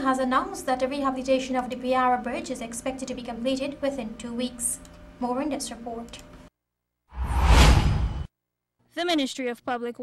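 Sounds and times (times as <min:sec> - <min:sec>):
whoosh over deep rumble: 0:07.2 - 0:08.3.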